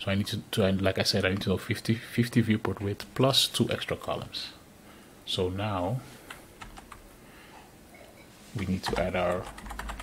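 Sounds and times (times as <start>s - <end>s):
computer keyboard typing: 6.3s - 7.0s, 8.9s - 10.0s.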